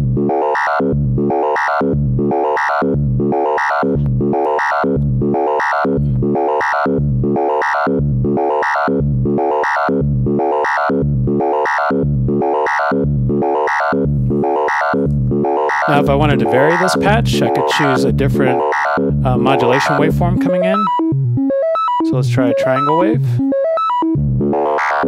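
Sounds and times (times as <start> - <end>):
inharmonic synth notes: 0.0 - 25.0.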